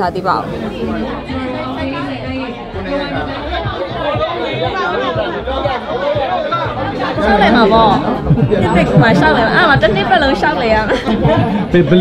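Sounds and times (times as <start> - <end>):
background music: 0.0 - 12.0
people talking: 0.0 - 12.0.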